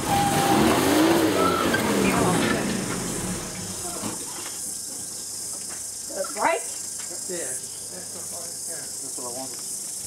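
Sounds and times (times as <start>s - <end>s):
truck engine revving: 0.0s - 4.4s.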